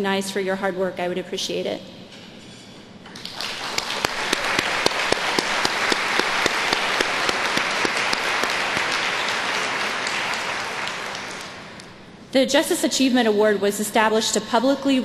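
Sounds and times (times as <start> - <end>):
large audience applauding: 3.1 - 11.9.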